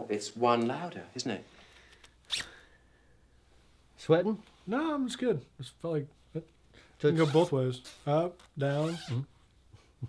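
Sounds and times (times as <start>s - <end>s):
jacket zipper pulled: 2.1s - 2.7s, 7.1s - 9.3s.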